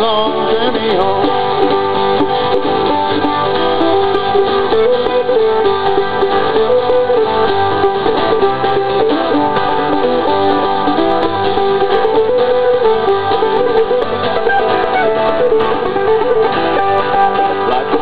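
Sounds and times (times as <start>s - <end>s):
acoustic string band playing: 0.0s - 18.0s.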